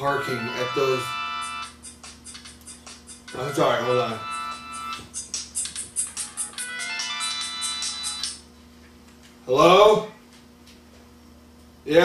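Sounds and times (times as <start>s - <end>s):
phone ringtone tune: 0.0s - 5.3s, 6.0s - 8.3s.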